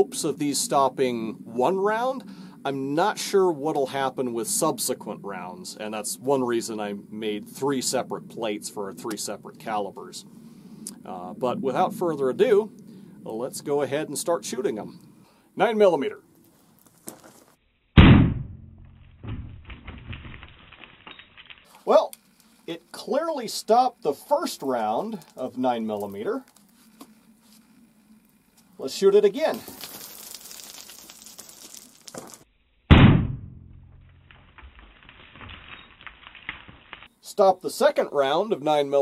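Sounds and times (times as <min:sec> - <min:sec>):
pistol shot: 0:18.0 - 0:18.8, 0:32.9 - 0:33.9
concrete plate thudding on wood: 0:18.0 - 0:20.4, 0:32.1 - 0:35.8.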